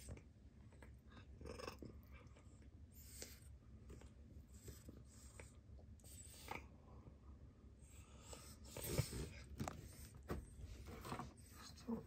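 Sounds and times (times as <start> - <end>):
cat purring: 0.0 - 6.7.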